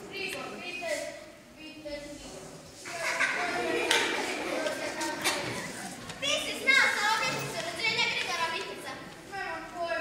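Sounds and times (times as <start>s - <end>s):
child speaking: 0.0s - 10.0s
high-pitched child's voice: 4.6s - 10.0s.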